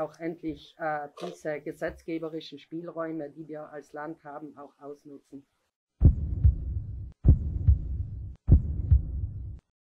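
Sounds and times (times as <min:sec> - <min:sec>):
deep double thumps: 0:06.0 - 0:09.6
low rumble: 0:06.0 - 0:09.6.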